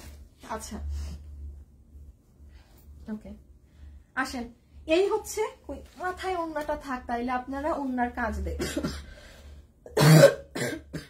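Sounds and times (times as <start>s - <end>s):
woman coughing: 8.5s - 9.1s, 9.9s - 11.0s.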